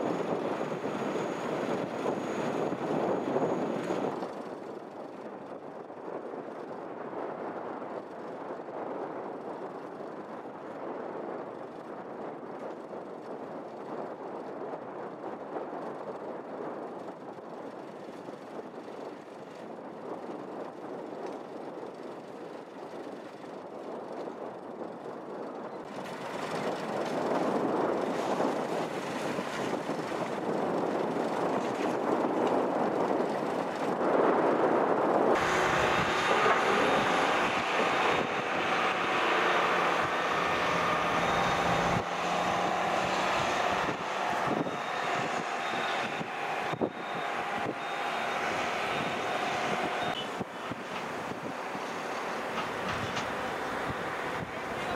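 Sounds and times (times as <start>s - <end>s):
heavy construction machinery engine: 0.0s - 4.5s, 25.8s - 33.9s, 35.4s - 54.9s
wind rumble on microphone: 0.0s - 54.9s
machine hum with whining tones: 35.3s - 54.9s.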